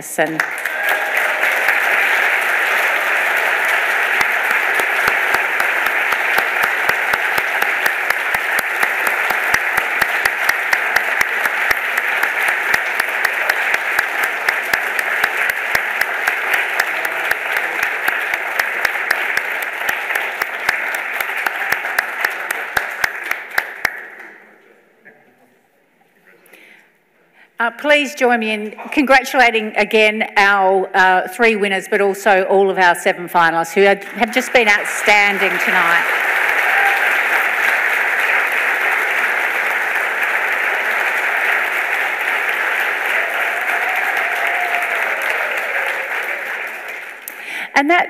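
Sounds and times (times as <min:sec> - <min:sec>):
audience applauding: 0:00.0 - 0:24.7, 0:34.0 - 0:47.8
sharp individual claps: 0:00.3 - 0:24.4.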